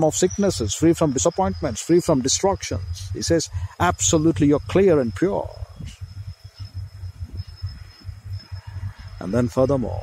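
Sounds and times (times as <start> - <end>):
faint high-pitched tone: 0.0 - 10.0
low uneven microphone rumble: 0.0 - 10.0.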